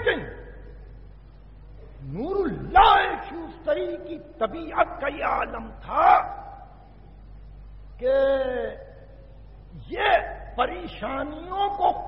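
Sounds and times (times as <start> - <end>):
man speaking: 0.0 - 0.6, 2.0 - 6.7, 8.0 - 9.1, 9.7 - 12.0
tape hum and hiss: 0.0 - 12.0.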